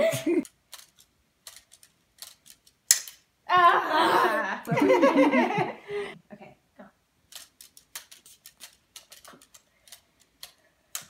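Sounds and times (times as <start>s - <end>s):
plastic toy parts clicking: 0.5s - 3.2s, 7.3s - 11.0s.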